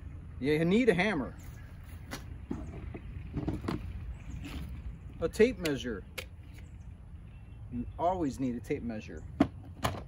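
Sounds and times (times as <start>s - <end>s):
steady low rumble: 0.0s - 9.4s.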